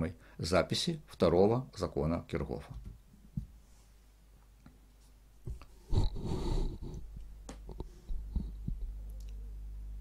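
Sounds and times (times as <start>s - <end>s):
low electrical hum: 0.0s - 10.0s
soft low thumps: 5.4s - 9.0s.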